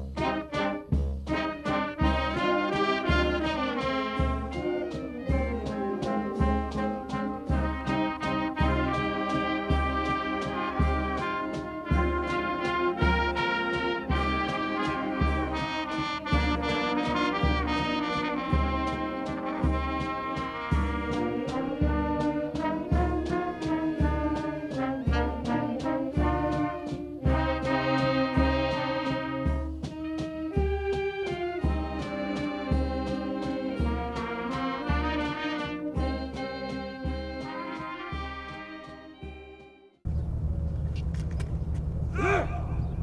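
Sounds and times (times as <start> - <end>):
military brass band march: 0.0 - 40.0
low outdoor rumble: 40.0 - 43.0.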